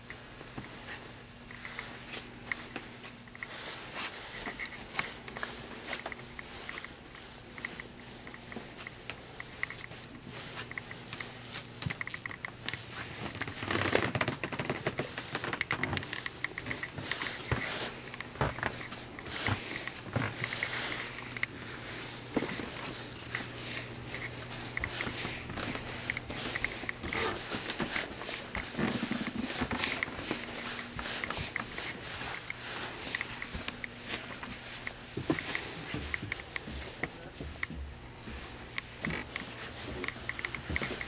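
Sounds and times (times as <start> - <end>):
shuffling footsteps: 0.0 - 41.0
steady low hum: 0.0 - 41.0.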